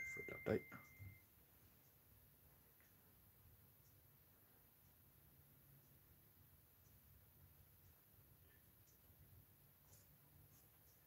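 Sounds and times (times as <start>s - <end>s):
thin high electronic tone: 0.0s - 1.3s.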